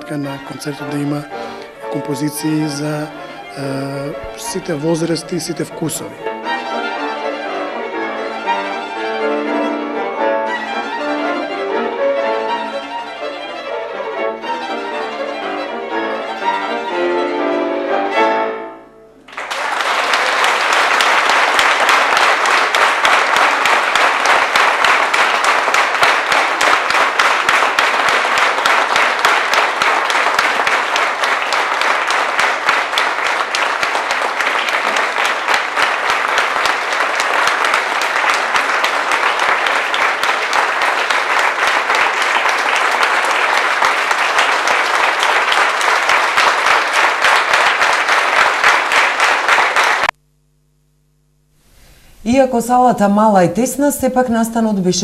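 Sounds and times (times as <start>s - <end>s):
audience applauding: 0.0s - 9.7s, 19.2s - 50.2s.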